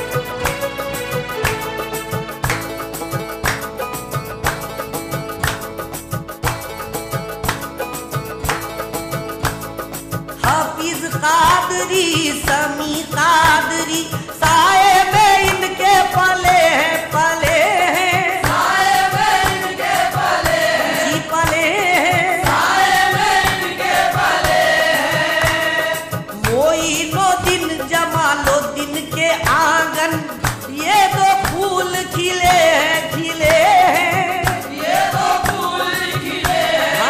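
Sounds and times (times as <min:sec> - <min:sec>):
steady percussion beat: 0:00.0 - 0:37.0
voices singing ornamented melody: 0:10.7 - 0:29.2, 0:29.8 - 0:37.0.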